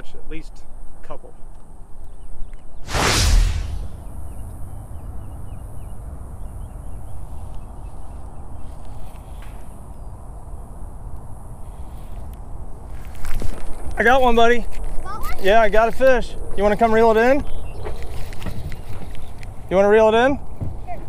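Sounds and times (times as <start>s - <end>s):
sharp whoosh: 2.9s - 5.7s.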